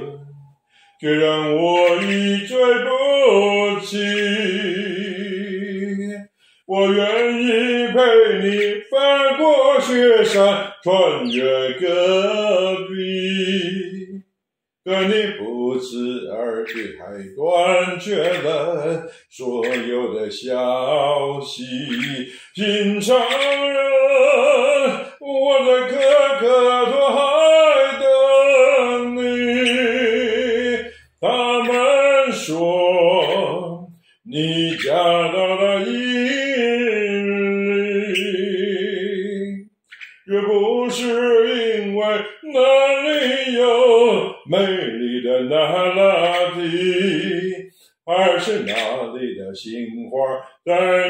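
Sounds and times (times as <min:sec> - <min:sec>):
man singing unaccompanied ballad: 0:00.0 - 0:51.0
breath: 0:00.6 - 0:01.0, 0:06.3 - 0:06.7, 0:19.1 - 0:19.3, 0:22.3 - 0:22.5, 0:47.7 - 0:48.0.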